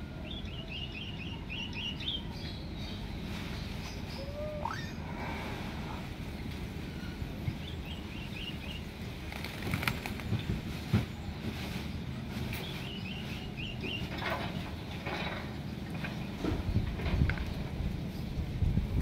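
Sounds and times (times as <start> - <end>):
bird wings flapping in cage: 9.3 - 10.7.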